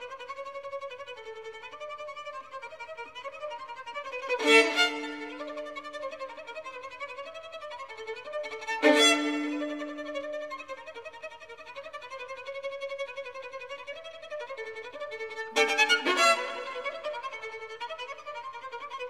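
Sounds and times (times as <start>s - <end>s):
violin staccato ostinato: 4.3s - 6.0s, 8.4s - 10.4s, 14.5s - 18.4s
loud accented violin chords: 4.4s - 5.9s, 8.7s - 10.2s, 15.6s - 17.6s.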